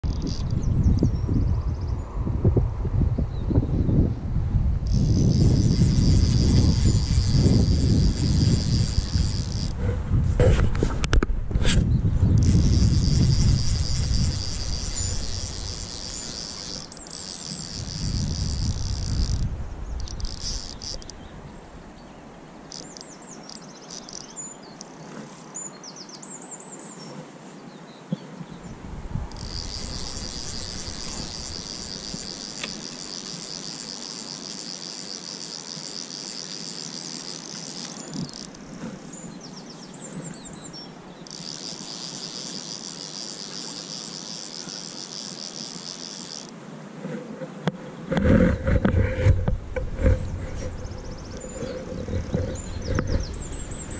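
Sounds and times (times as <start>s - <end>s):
insects chirring: 0.0s - 1.7s, 4.8s - 10.0s, 12.3s - 27.1s, 29.2s - 46.6s, 50.2s - 53.9s
bird chirps: 22.0s - 25.0s, 50.8s - 53.9s.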